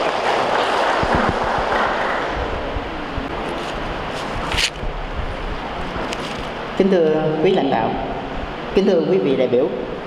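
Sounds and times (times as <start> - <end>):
audience applause: 0.0 - 2.8.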